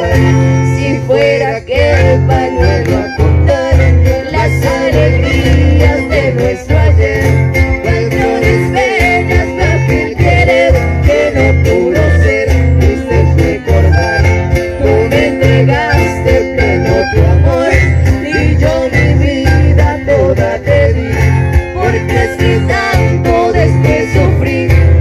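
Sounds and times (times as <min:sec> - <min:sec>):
accordions and acoustic guitars: 0:00.0 - 0:25.0
pulsing bass beat: 0:00.0 - 0:25.0.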